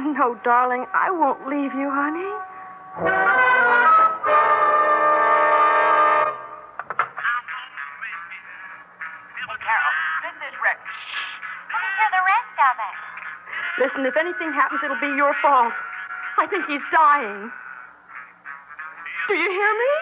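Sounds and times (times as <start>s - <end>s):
music with wavering sliding notes: 1.3s - 4.4s
brass section chord: 1.3s - 6.8s.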